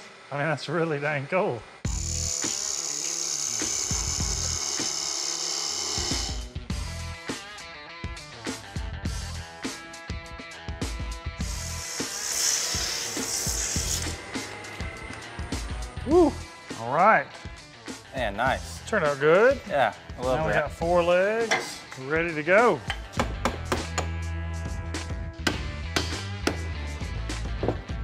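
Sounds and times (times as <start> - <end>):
wood lathe turning tool cutting: 0.9 - 6.6, 11.5 - 16.1
background music with a beat: 6.4 - 11.7, 22.6 - 28.0.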